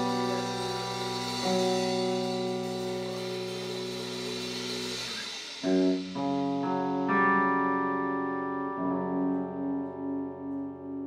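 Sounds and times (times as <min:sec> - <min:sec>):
electric guitars and bass chord ringing: 0:00.0 - 0:11.0.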